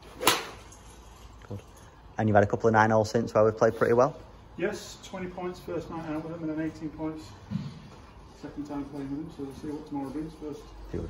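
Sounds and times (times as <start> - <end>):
golf club striking ball: 0.2 - 0.7.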